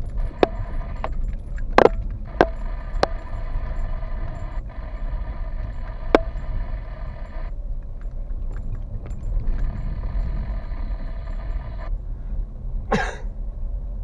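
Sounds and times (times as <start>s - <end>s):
car rolling low rumble: 0.0s - 14.0s
faint high hum: 0.0s - 14.0s.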